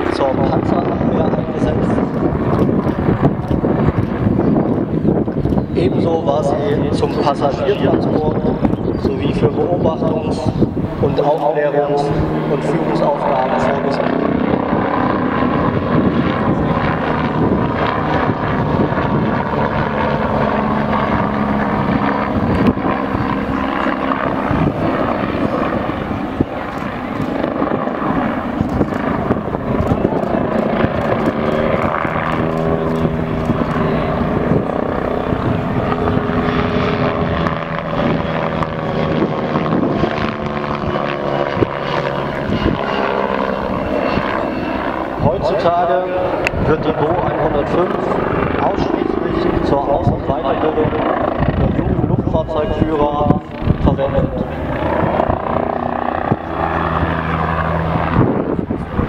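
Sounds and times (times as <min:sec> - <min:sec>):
helicopter flying overhead: 0:00.0 - 0:59.0.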